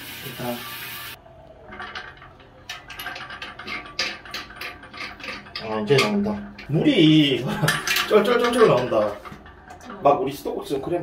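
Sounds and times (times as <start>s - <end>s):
water spraying into metal drum: 0.0s - 1.2s.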